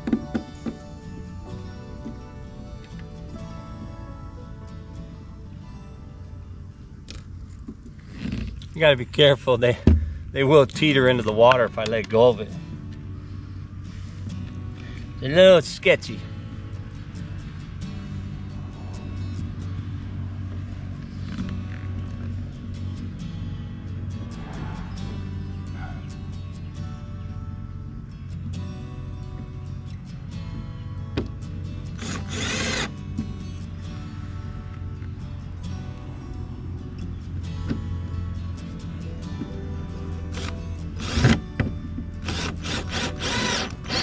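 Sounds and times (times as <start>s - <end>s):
background music: 0.0s - 7.6s, 10.3s - 44.0s
cordless power tool whirring: 32.0s - 32.9s, 40.4s - 41.4s, 42.2s - 44.0s.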